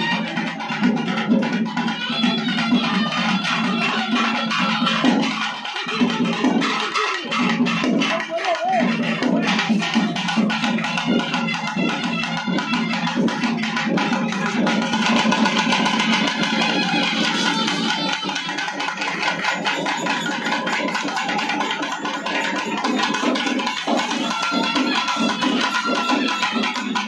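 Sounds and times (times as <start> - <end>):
fast festival drumming: 0.0 - 27.0.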